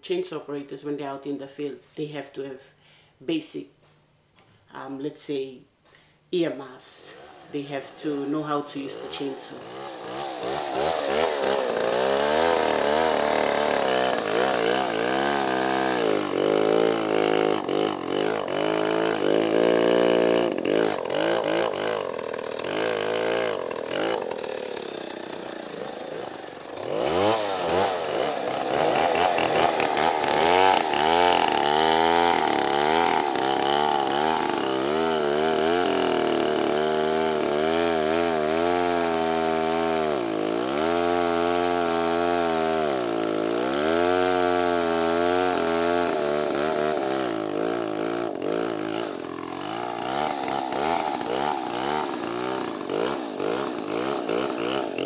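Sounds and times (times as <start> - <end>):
chainsaw cutting tree trunk: 7.0 - 55.0.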